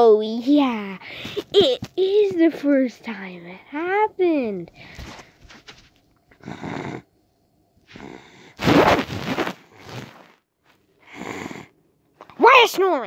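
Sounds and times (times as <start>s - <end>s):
child imitating snoring: 6.3s - 7.1s, 7.9s - 10.2s, 11.1s - 11.8s.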